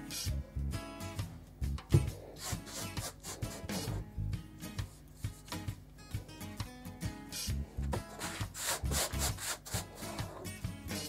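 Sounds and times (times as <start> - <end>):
sandpaper rubbing wood: 2.0 - 4.0, 7.8 - 11.0.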